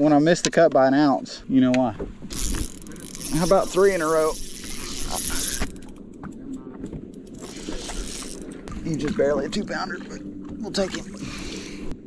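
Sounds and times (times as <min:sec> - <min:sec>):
low steady rumble: 0:01.3 - 0:12.0
fishing reel clicking: 0:02.3 - 0:06.0, 0:07.2 - 0:08.6.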